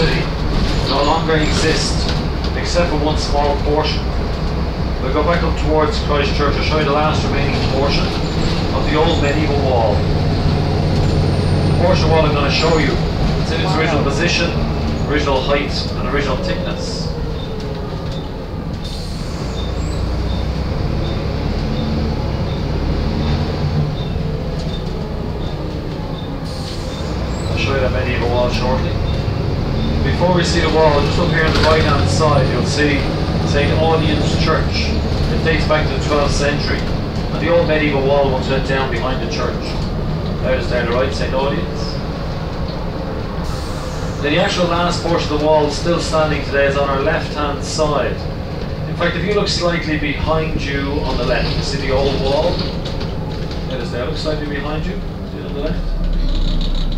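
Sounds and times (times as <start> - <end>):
bus engine and road rumble: 0.0 - 56.9.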